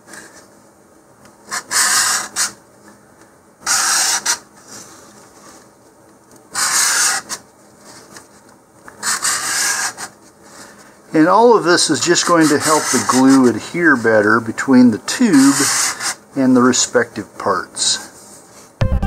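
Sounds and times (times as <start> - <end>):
sandpaper rubbing on tube: 1.5 - 2.6, 3.6 - 4.8, 6.5 - 7.4, 9.0 - 10.1, 11.4 - 14.3, 15.3 - 16.2.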